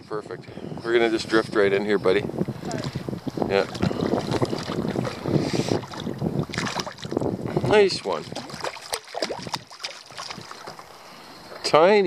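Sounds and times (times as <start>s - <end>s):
wind: 0.0s - 12.0s
light water sounds: 2.5s - 12.0s.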